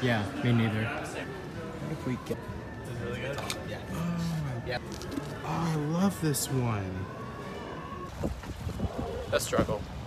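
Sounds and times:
wind buffeting microphone: 8.1s - 10.0s.

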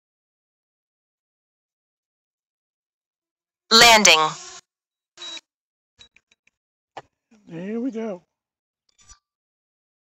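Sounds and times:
synthesized voice prompt: 3.7s - 4.4s.

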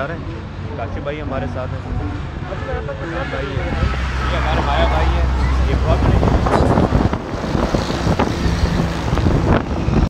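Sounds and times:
heavy traffic rumble: 0.0s - 10.0s
truck driving past: 0.0s - 10.0s
wind buffeting microphone: 3.3s - 10.0s.

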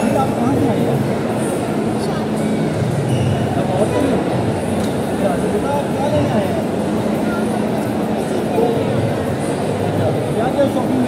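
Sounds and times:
many overlapping voices: 0.0s - 11.0s
steady low hum: 0.0s - 11.0s.

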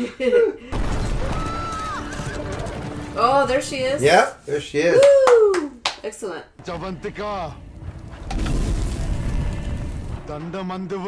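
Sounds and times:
deep whoosh of flames: 6.6s - 10.9s.

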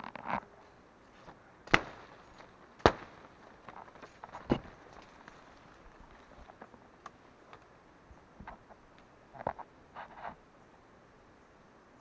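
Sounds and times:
undergrowth rustling: 0.0s - 10.6s
sharp loud cracks: 1.7s - 2.2s, 2.8s - 3.3s.

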